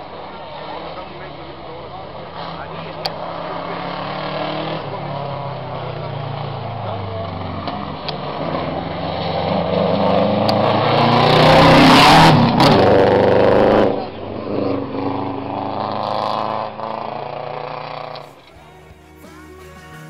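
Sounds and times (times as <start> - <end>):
rally car engine revving: 0.0 - 19.2
distant engine: 0.0 - 20.0.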